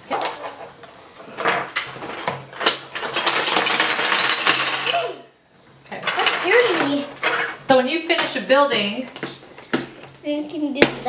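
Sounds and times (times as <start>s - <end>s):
toy blocks clattering on table: 1.4s - 5.0s, 6.0s - 8.4s.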